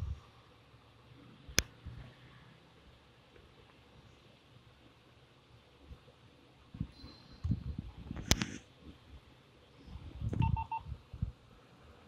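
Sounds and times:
short electronic beeps: 0:10.4 - 0:10.9.

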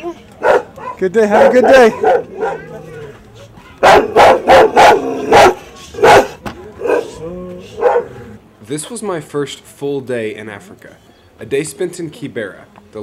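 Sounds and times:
faint voices: 0:00.0 - 0:09.0
dog barking: 0:00.4 - 0:02.8, 0:03.8 - 0:07.2, 0:07.8 - 0:08.1.

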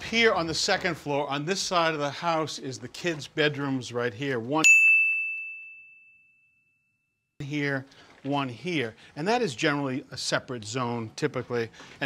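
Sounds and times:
high bell-like ding: 0:04.6 - 0:07.4.

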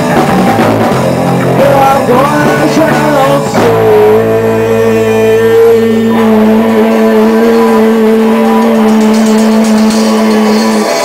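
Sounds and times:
rock band playing loudly: 0:00.0 - 0:11.0.

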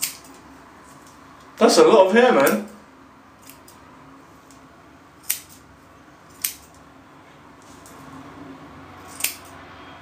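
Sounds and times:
scissors snipping hair: 0:00.0 - 0:00.4, 0:03.4 - 0:03.8, 0:05.2 - 0:05.6, 0:06.3 - 0:06.8, 0:09.1 - 0:09.6.

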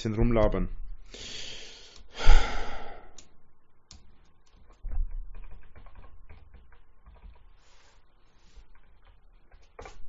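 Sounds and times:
typing on computer keyboard: 0:03.9 - 0:07.6, 0:08.6 - 0:10.0.

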